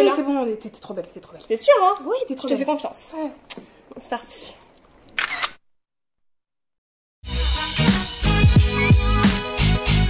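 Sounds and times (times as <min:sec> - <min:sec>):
camera shutter: 0:05.2 - 0:05.6.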